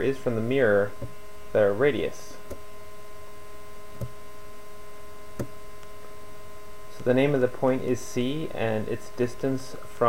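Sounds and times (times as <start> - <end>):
electrical hum: 0.0 - 10.0
fixed steady tones: 2.4 - 8.6.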